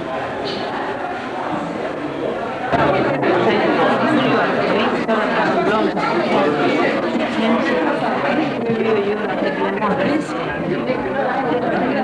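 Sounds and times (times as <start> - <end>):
chatter of many people: 0.0 - 12.0.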